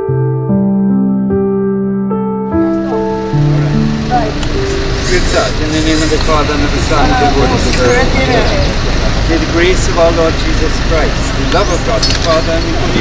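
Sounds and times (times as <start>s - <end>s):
indistinct voices: 2.8s - 13.0s.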